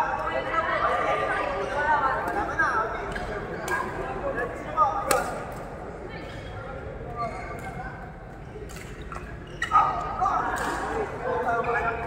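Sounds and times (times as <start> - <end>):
background chatter: 0.0 - 12.0
rackets hitting shuttlecock: 5.0 - 5.4.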